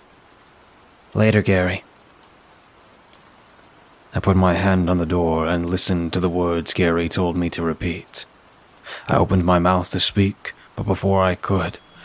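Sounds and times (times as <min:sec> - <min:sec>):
faint steady rain: 0:00.0 - 0:12.0
person narrating: 0:01.1 - 0:01.8, 0:04.2 - 0:08.3, 0:08.9 - 0:12.0.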